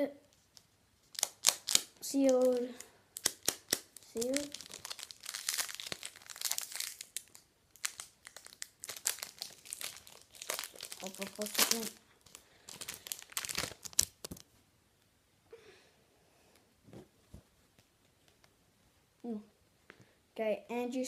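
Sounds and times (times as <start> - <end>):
wrapper crinkling and ripping: 0.3 - 14.5.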